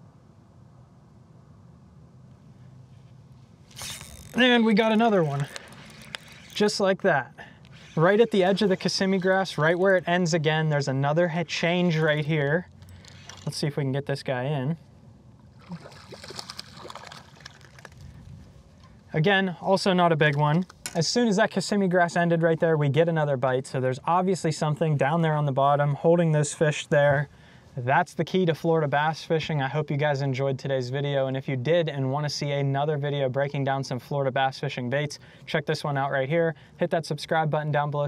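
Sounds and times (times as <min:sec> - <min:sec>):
faint low hum: 0:00.0 - 0:38.0
fishing rod handling noise: 0:03.6 - 0:06.8, 0:12.7 - 0:13.6
fish splashing at water surface: 0:15.6 - 0:18.2.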